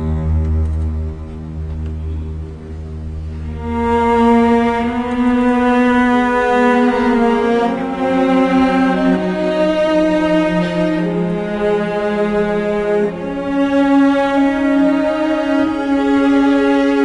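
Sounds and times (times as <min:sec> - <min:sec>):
orchestra strings sustained chords: 0:00.0 - 0:17.0.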